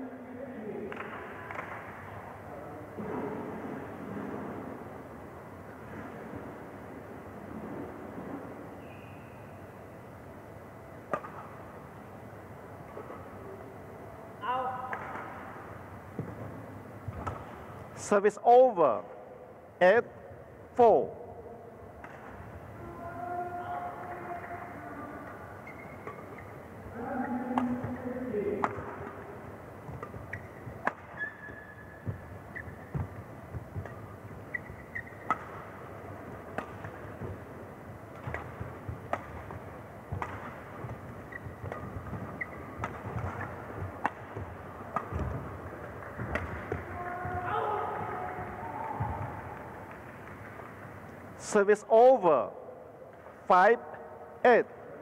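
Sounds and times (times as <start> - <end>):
racket hitting shuttlecock: 0.9 - 2.2, 11.0 - 11.7, 14.8 - 17.8, 22.0 - 22.6, 23.9 - 26.6, 27.2 - 51.0
shoes squeaking on court: 7.6 - 9.6, 24.1 - 28.0, 28.6 - 51.1.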